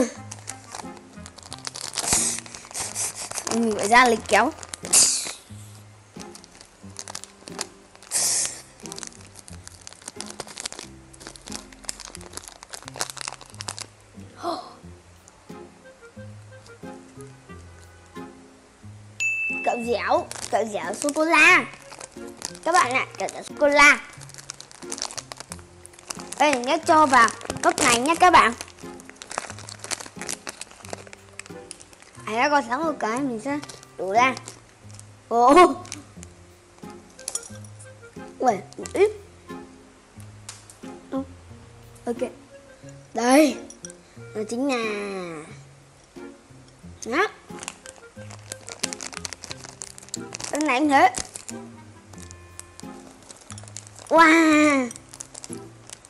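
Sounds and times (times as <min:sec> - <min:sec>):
snack wrapper tearing and crinkling: 0:00.0 - 0:13.9, 0:19.9 - 0:35.1, 0:35.7 - 0:39.0, 0:46.6 - 0:56.0
background music: 0:00.0 - 0:56.0.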